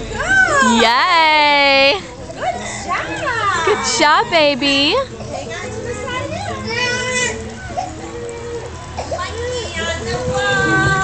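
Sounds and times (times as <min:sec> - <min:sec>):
running water: 0:00.0 - 0:11.0
young children's voices: 0:05.4 - 0:11.0.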